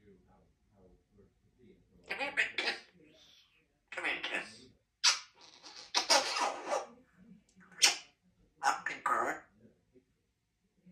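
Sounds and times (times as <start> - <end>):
parrot vocal sounds: 2.0 - 7.0, 7.6 - 9.5.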